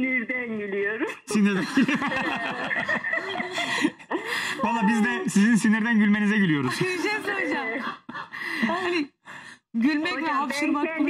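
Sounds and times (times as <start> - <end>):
people laughing: 1.3 - 5.7, 6.4 - 9.1.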